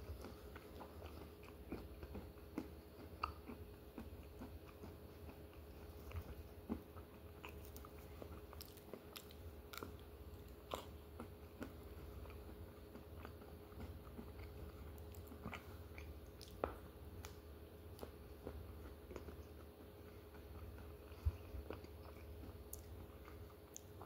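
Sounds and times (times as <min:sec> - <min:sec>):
low steady hum: 0:00.0 - 0:24.0
person chewing: 0:00.0 - 0:24.0.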